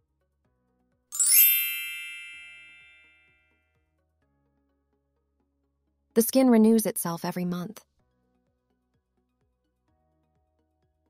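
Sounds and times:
bell-like ding: 1.2s - 3.3s.

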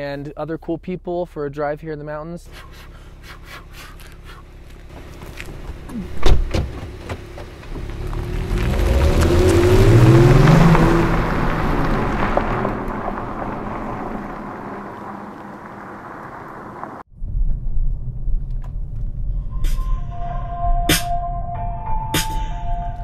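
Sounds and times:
car engine accelerating: 2.5s - 17.1s.

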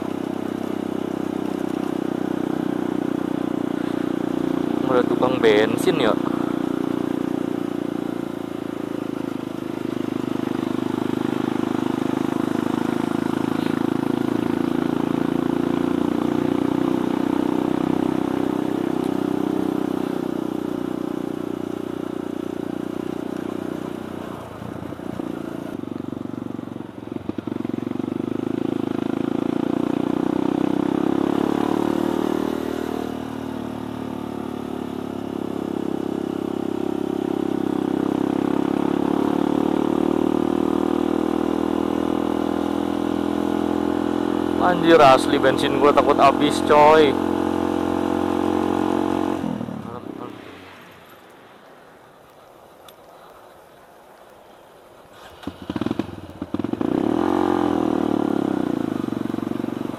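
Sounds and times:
motorcycle engine running: 0.0s - 52.5s, 55.1s - 59.9s.

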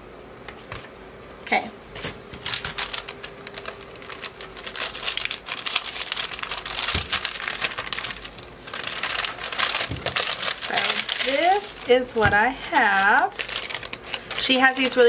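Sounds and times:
mailer bag crinkling: 2.3s - 15.0s.

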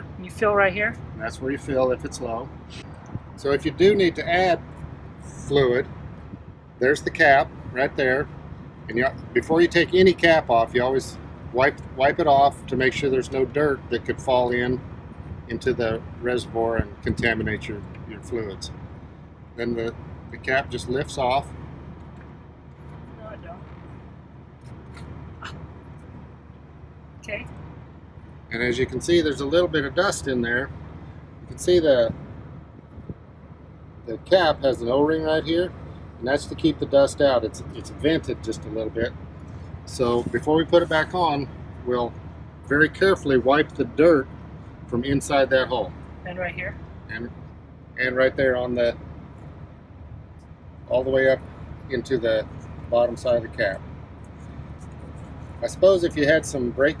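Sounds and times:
engine idling: 0.0s - 57.0s
low vehicle rumble: 0.0s - 57.0s.

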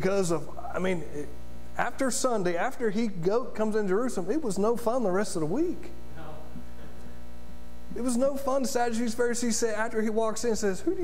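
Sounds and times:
speech: 0.0s - 6.5s, 7.9s - 11.0s
electrical mains hum: 0.0s - 11.0s.

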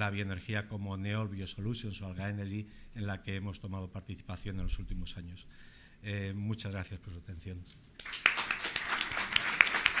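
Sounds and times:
audience applause: 8.0s - 10.0s
sharp close hand claps: 8.0s - 10.0s.

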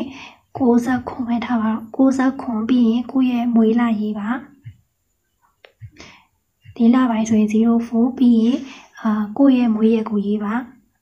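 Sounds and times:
woman talking: 0.0s - 4.8s, 6.7s - 10.8s.

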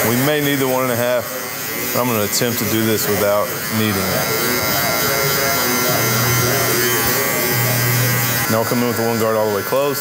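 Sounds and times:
electric hair clipper buzzing: 0.0s - 10.0s.

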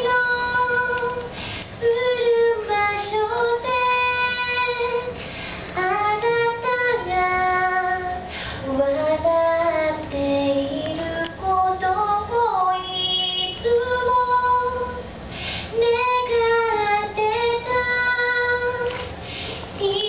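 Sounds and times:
woman singing into microphone: 0.0s - 15.0s, 15.7s - 19.1s, 19.7s - 20.0s
singer breathing: 1.3s - 1.8s, 5.1s - 5.8s, 8.2s - 8.7s, 15.2s - 15.8s, 19.2s - 19.8s.

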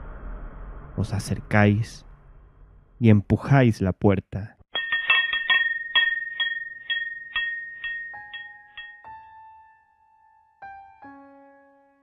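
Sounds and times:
shop door bells jingling: 4.8s - 9.1s.

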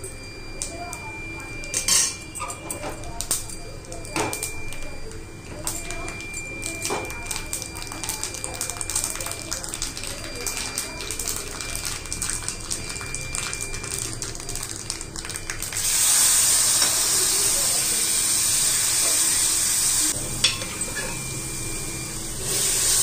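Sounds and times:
loud steady sizzle: 0.0s - 23.0s
spices crackling in hot oil: 3.0s - 23.0s.

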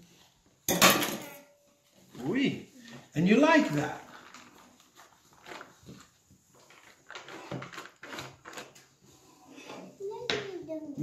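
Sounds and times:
foil wrapper crinkling: 3.2s - 9.0s.

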